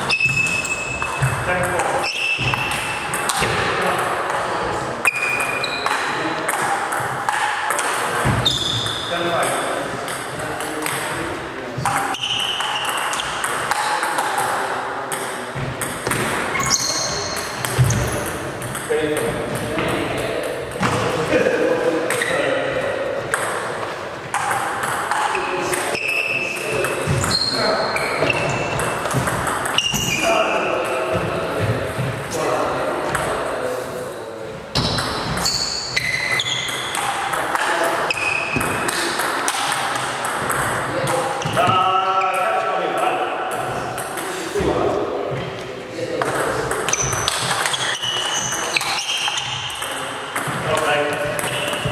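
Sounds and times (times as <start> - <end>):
people talking: 1.2 - 35.5, 36.4 - 51.9
high-pitched squeaks: 8.4 - 9.2, 16.5 - 18.3, 25.4 - 28.9, 34.8 - 37.0, 46.9 - 49.8.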